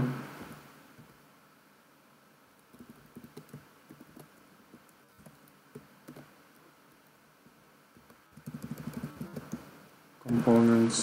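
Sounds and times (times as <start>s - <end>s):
computer keyboard clicks: 2.6s - 6.3s, 8.0s - 9.7s, 10.3s - 10.7s.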